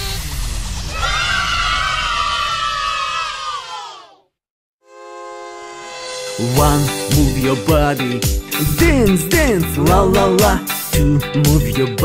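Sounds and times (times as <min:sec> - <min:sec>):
voices cheering: 0:00.9 - 0:04.2.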